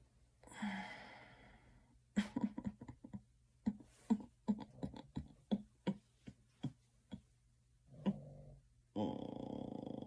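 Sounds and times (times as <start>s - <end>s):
woman sighing: 0.4s - 1.6s.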